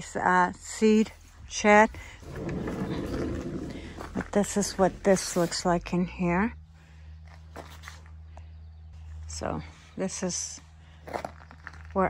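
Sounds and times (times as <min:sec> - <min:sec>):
glass door rustling scrape: 0:02.2 - 0:05.4.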